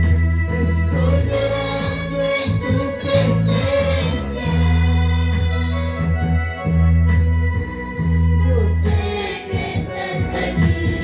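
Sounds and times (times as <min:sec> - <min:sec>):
deep bass: 0:00.0 - 0:11.0
electronic organ chords: 0:00.0 - 0:11.0.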